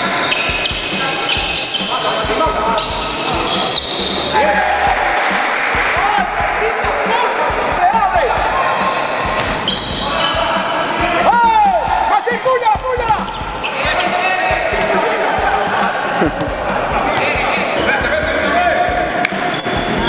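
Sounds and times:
sneakers squeaking: 0.0 - 4.5, 8.7 - 11.0, 11.7 - 20.0
players calling out: 0.0 - 20.0.

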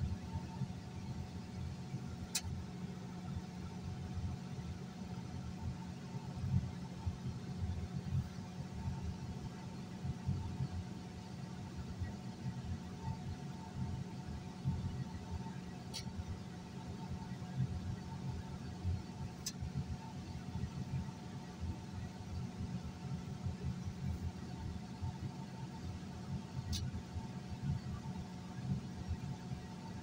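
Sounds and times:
sharp click: 2.3 - 2.6.

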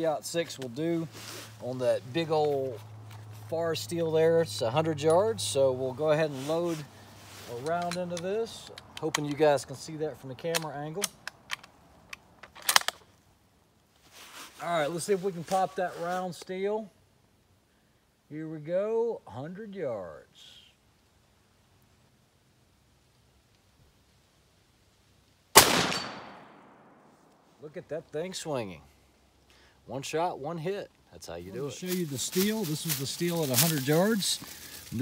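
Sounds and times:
rifle loading metallic clicks: 7.6 - 9.4, 10.5 - 13.1
rifle bolt closing clicks: 10.5 - 13.0
rifle shot with echo: 25.6 - 27.1.

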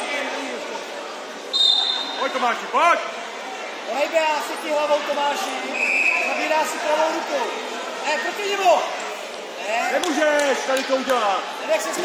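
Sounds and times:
voices echoing in a hall: 0.0 - 12.0
referee's whistle blast: 1.5 - 2.3, 5.7 - 6.4.

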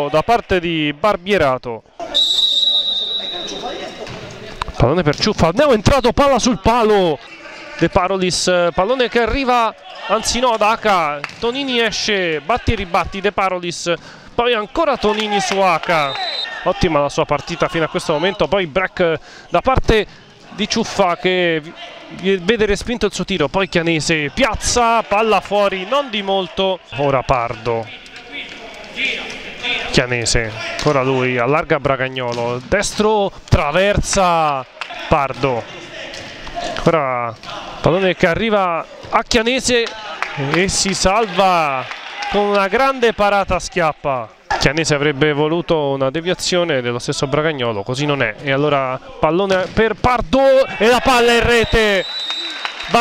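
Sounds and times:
murmur of sports hall: 0.0 - 53.0
referee's whistle blast: 2.0 - 3.8, 15.8 - 16.6, 51.3 - 52.9
players calling out: 2.0 - 4.7, 14.4 - 31.5, 50.3 - 53.0
ball and shoes on hall floor: 3.2 - 5.5.

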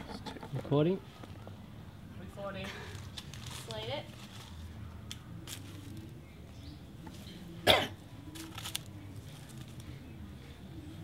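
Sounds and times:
person coughing: 7.6 - 8.0.

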